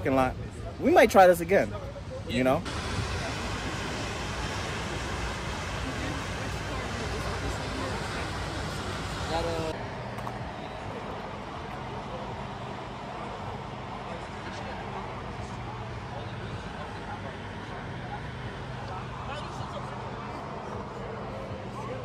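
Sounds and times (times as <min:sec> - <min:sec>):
faint background chatter: 0:00.0 - 0:22.0
car engine humming: 0:01.4 - 0:22.0.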